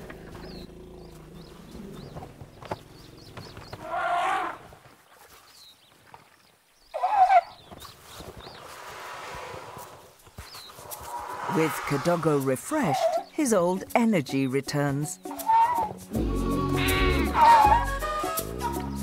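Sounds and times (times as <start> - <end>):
elephant squealing: 7.0 - 7.5, 12.8 - 13.3, 15.3 - 16.0, 16.7 - 18.4.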